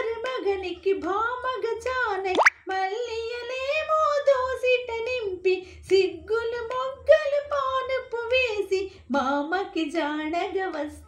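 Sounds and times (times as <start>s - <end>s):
woman singing unaccompanied: 0.0s - 11.0s
short rising pop: 2.3s - 2.6s.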